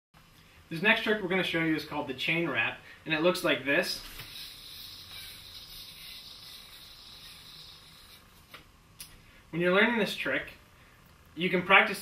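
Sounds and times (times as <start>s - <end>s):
spinning yo-yo whirring: 3.9s - 8.7s.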